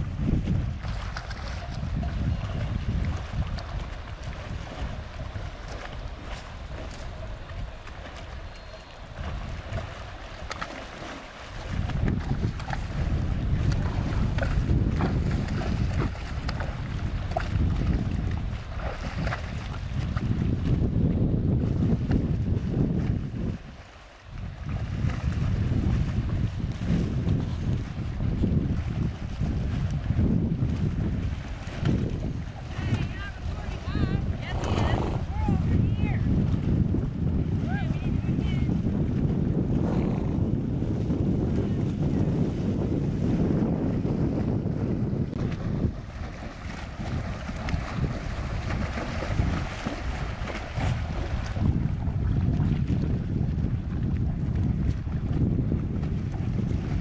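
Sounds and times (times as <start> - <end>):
horses splashing through water: 0.0 - 57.0
wind buffeting microphone: 0.0 - 57.0.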